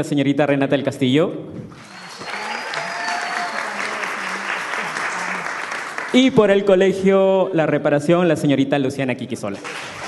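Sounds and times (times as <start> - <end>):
audience applauding: 1.7 - 6.6, 9.6 - 10.0.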